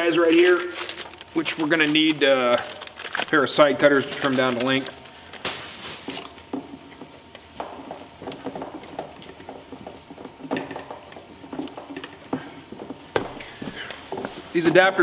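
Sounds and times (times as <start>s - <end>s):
zip ties ratcheting: 6.1s - 6.4s, 7.9s - 8.2s.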